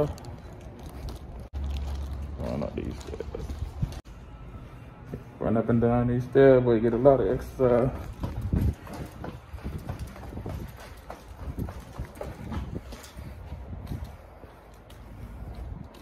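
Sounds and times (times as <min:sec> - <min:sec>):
footsteps running down stairs: 0:07.8 - 0:14.2.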